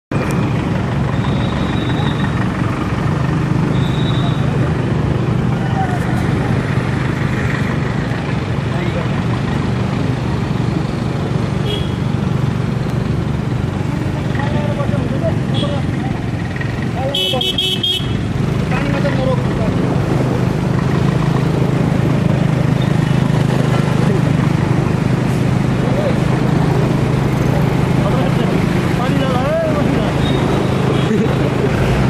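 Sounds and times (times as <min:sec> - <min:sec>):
engine hum: 0:00.1 - 0:32.0
traffic noise: 0:00.1 - 0:32.0.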